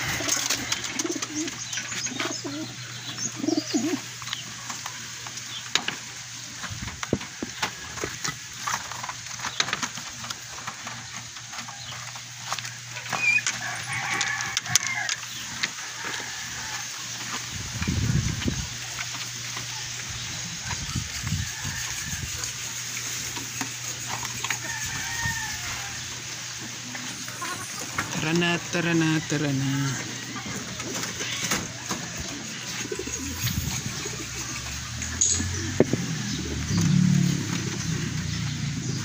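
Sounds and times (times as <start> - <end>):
pigeons cooing: 0.0 - 6.8, 7.4 - 39.0.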